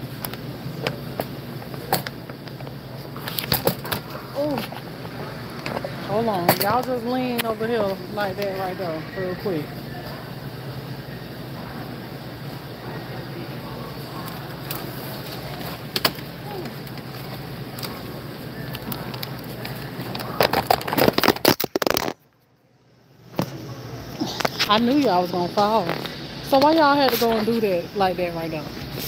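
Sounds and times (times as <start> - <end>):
steady store hum: 0.0 - 29.0
plastic crinkling: 16.5 - 22.2.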